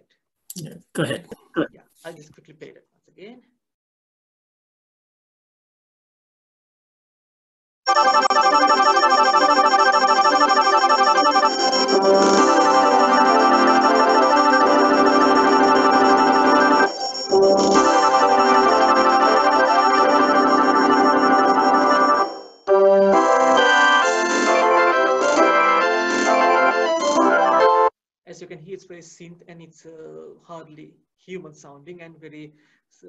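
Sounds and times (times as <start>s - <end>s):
synthetic orchestral fanfare: 7.9s - 27.9s.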